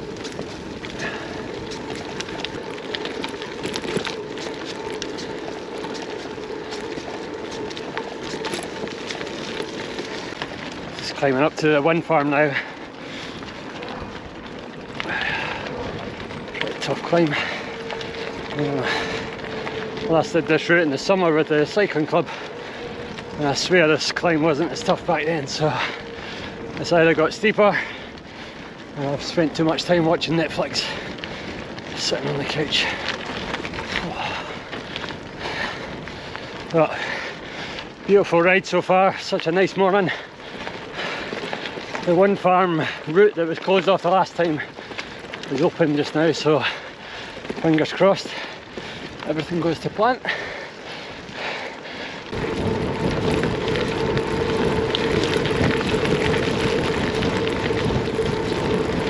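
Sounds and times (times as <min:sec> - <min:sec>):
bike tyres rolling on gravel: 0:00.0 - 0:59.0
wind buffeting microphone: 0:00.0 - 0:59.0.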